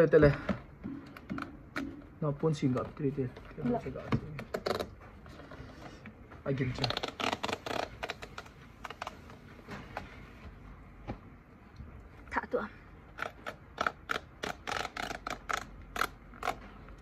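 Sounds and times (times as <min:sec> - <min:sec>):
paper strip tearing off cardboard: 0:06.8 - 0:09.1, 0:13.2 - 0:17.0.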